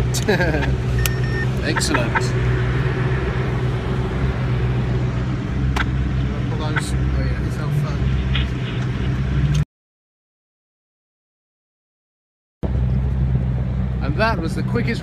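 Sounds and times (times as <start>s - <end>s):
car engine running at low revs: 0.0s - 9.6s, 12.6s - 15.0s
sharp clicks and knocks: 5.7s - 6.0s.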